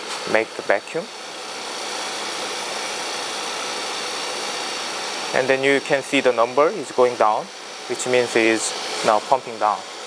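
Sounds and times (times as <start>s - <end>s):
vacuum pump rushing hiss: 0.0s - 10.0s.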